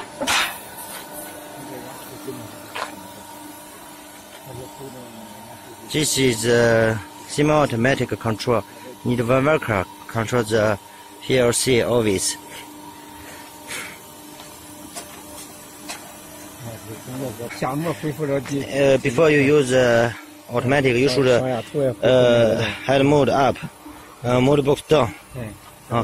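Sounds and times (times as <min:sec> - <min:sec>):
hydraulic machine humming: 0:00.0 - 0:26.0.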